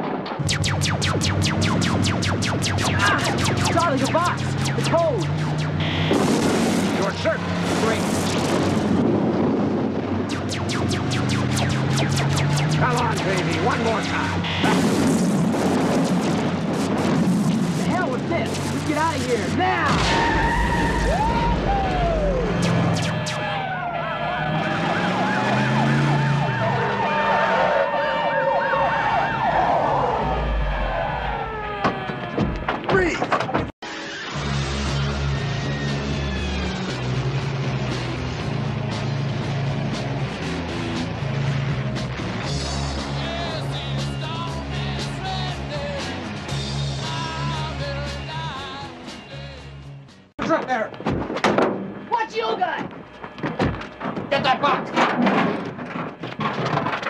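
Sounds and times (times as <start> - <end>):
action film music: 0.0 - 9.0, 9.9 - 26.6, 33.8 - 54.8
crashes and impacts: 0.0 - 21.4
police siren wailing: 0.4 - 8.9, 10.1 - 14.9, 18.6 - 32.7
vehicle engines: 0.4 - 32.9, 33.9 - 51.0.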